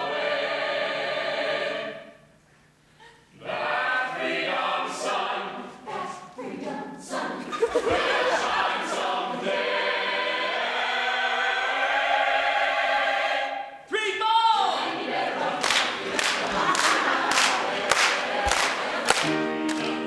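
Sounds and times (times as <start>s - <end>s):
chorus singing: 0.0s - 2.3s, 3.4s - 13.8s, 14.5s - 20.0s.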